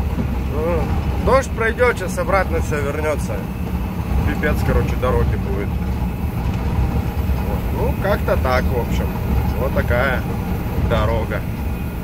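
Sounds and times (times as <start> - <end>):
vehicle rumble on dirt road: 0.0 - 12.0.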